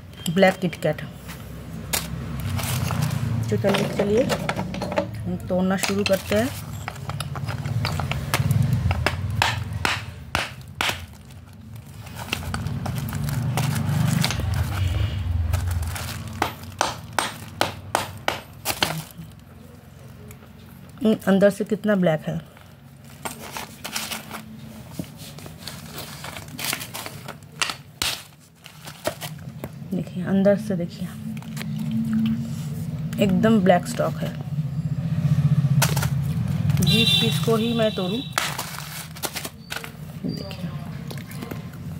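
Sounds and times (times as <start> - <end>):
hammer knocking clay pieces: 3.6 - 11.1, 16.3 - 19.0, 27.6 - 28.2
slate clay cracking and snapping: 7.2 - 14.8, 26.4 - 29.4
crumbling rustle: 11.0 - 16.8, 23.0 - 27.5, 38.4 - 40.1.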